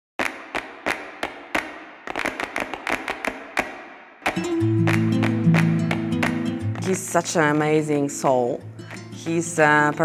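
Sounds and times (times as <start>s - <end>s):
ringing percussive strikes: 4.3s - 7.0s.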